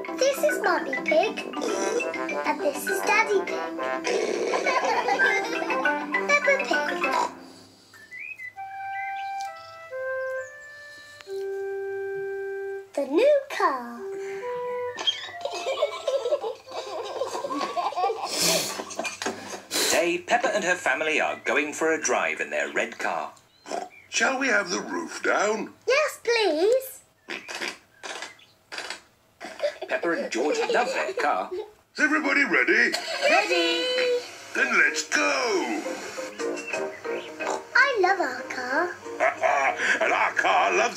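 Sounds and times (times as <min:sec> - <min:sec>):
simple tune through tv speaker: 0:00.0 - 0:23.4, 0:29.5 - 0:40.9.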